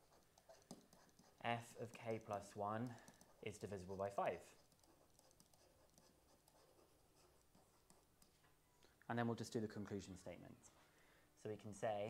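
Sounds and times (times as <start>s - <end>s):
stylus tapping and scratching on screen: 0.0s - 8.6s.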